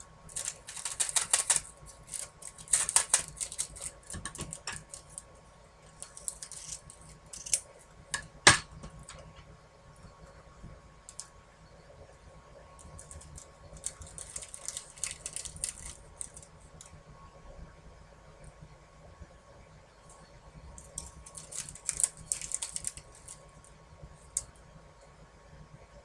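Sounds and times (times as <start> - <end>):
craft supplies clicking and rattling: 0.3 - 5.3, 6.0 - 9.2, 12.9 - 16.4, 20.8 - 23.4.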